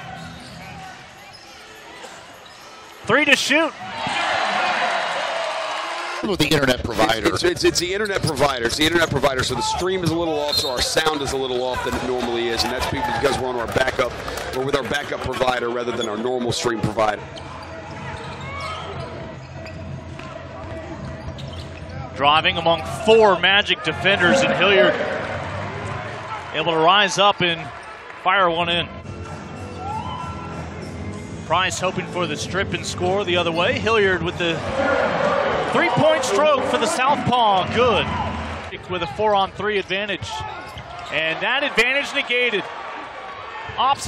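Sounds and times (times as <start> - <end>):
basketball game play: 0.0 - 44.0.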